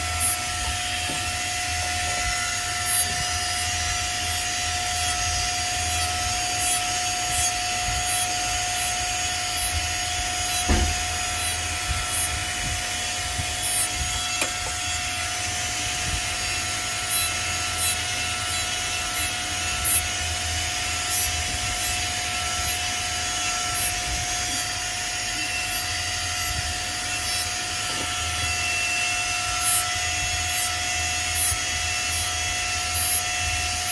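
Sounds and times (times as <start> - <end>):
rotary handpiece whine: 0.0 - 33.9.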